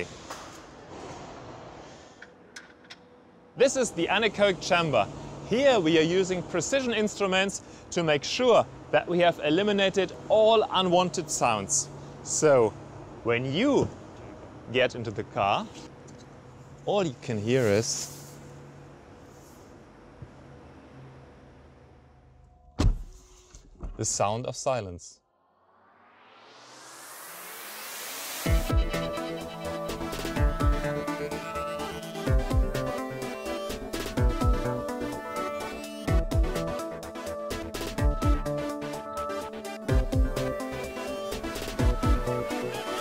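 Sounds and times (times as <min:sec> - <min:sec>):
car door shutting: 0:22.8 - 0:24.0.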